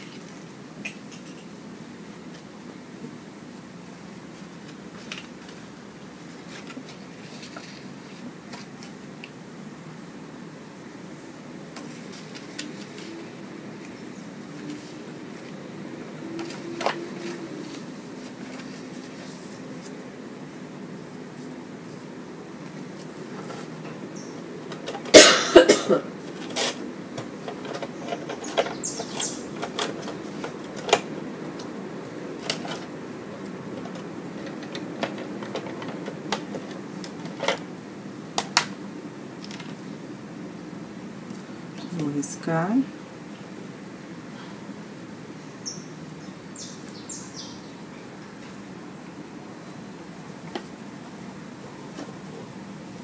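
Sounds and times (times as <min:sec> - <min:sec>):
paper and fabric rustling: 0:04.3 - 0:09.0, 0:11.8 - 0:13.4, 0:16.4 - 0:20.1.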